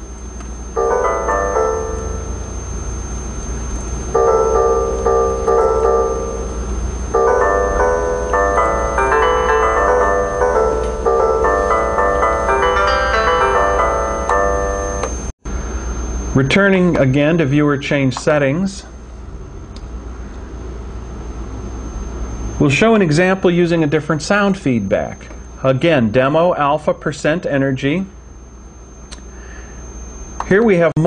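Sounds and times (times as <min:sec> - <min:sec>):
koto-like synth note runs: 0:00.6 - 0:17.9.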